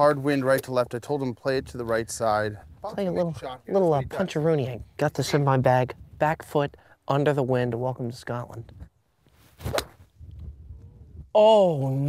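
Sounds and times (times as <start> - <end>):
golf club swish: 9.3 - 10.1.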